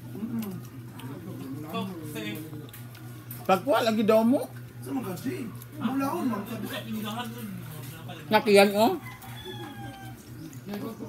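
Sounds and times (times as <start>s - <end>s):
rooster crowing: 8.7s - 10.4s.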